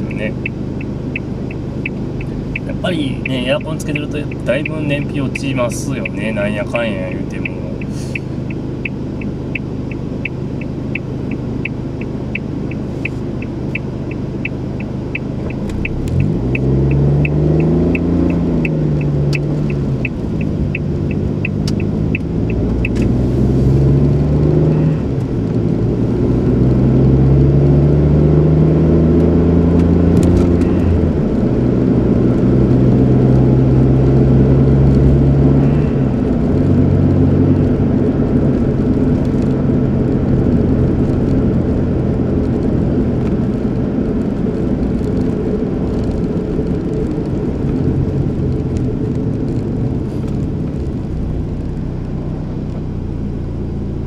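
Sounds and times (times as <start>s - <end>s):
car engine: 0.0s - 54.0s
road noise: 0.0s - 54.0s
turn signal relay clicking: 0.3s - 23.1s.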